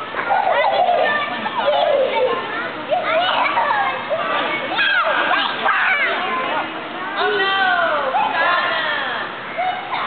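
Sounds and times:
children shouting and squealing: 0.0s - 6.7s, 7.9s - 10.0s.

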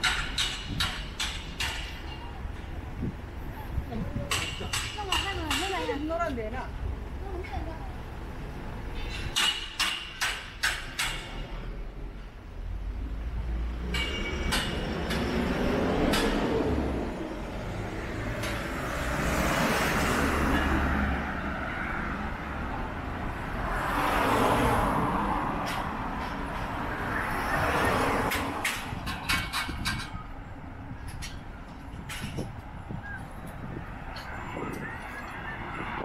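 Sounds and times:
vehicles passing: 0.0s - 36.0s.

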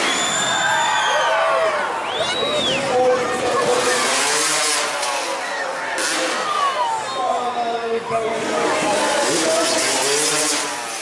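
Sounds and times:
motocross bike engine revving: 3.1s - 6.8s, 8.2s - 11.0s.

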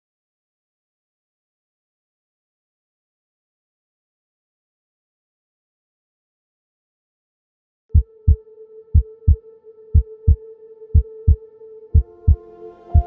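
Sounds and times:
soft music: 7.9s - 13.0s.

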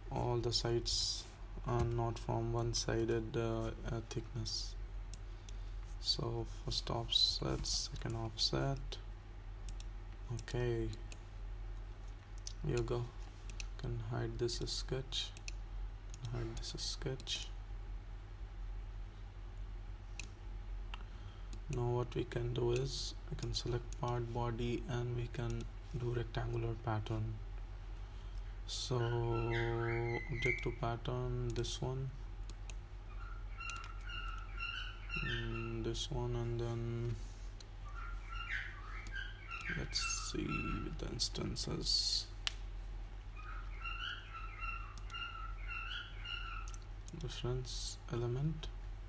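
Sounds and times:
low steady hum: 0.0s - 49.0s
computer mouse clicks: 9.7s - 11.2s, 12.4s - 13.8s, 33.6s - 34.4s, 45.0s - 45.3s
faint clicks: 11.8s - 13.8s, 33.6s - 34.5s.

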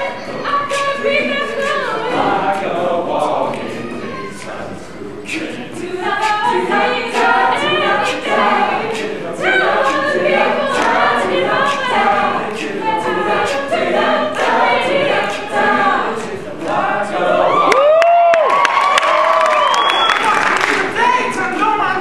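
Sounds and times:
choir singing a cappella: 0.0s - 18.0s.

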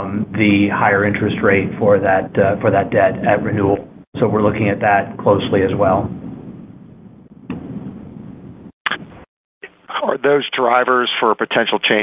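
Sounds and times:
rumbling background noise: 0.0s - 9.2s.

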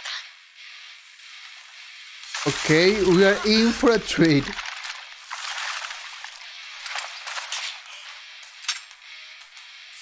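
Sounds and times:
steady hiss: 0.0s - 10.0s
thin filtered tv audio: 0.0s - 10.0s.

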